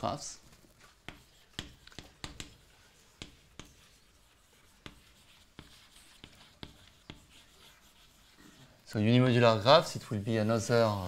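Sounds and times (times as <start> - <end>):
chalk tapping and scratching on blackboard: 0.4 - 8.8.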